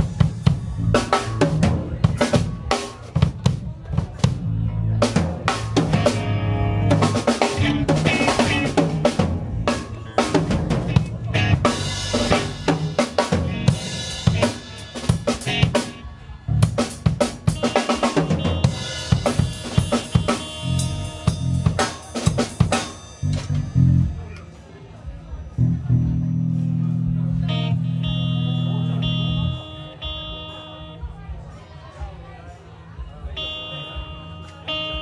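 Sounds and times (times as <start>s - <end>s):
live band playing: 0.0s - 24.3s, 25.5s - 31.1s, 33.4s - 35.0s
drum kit hits: 5.0s - 16.0s, 16.6s - 24.1s.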